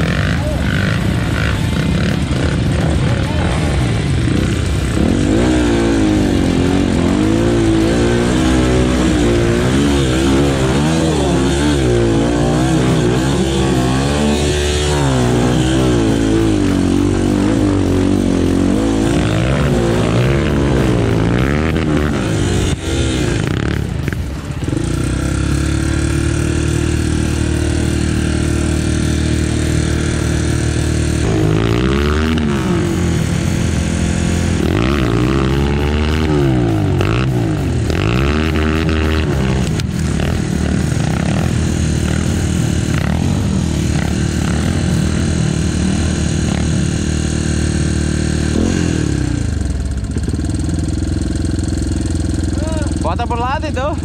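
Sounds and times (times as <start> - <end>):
dirt bike engine revving: 0.0 - 54.0.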